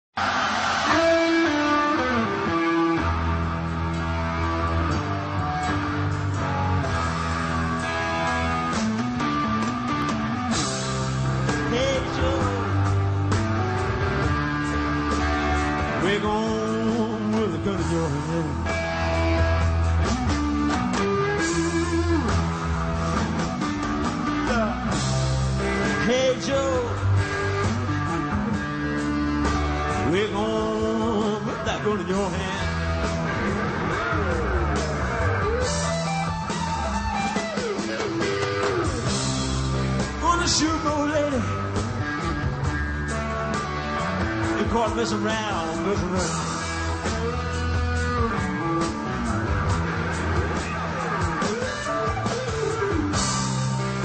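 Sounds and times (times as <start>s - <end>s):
bass: 0.0s - 54.0s
drums: 0.0s - 54.0s
rock band playing: 0.2s - 54.0s
electric guitar lead notes: 0.8s - 54.0s.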